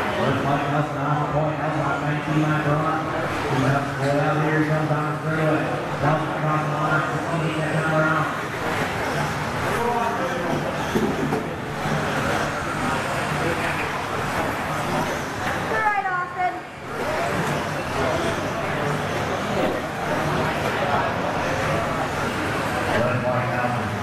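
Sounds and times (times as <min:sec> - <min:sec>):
electric rc cars racing: 0:00.0 - 0:24.0.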